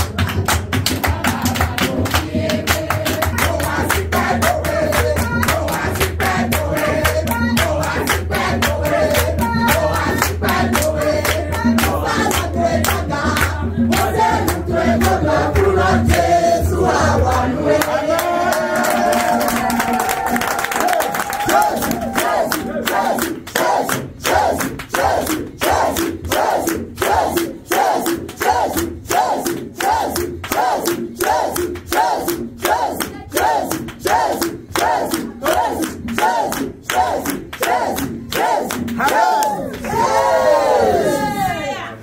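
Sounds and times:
crowd singing: 0.0 - 20.9, 21.5 - 41.6
crowd chanting shouted calls: 21.4 - 41.9.

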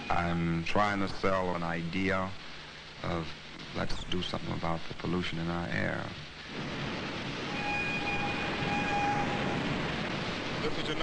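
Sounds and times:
industrial machinery noise: 0.0 - 1.7, 6.3 - 11.0
high steady whine: 0.0 - 11.0.

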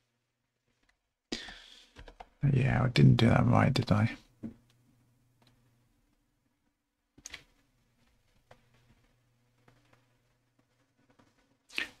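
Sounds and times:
breath in: 1.3 - 2.0.

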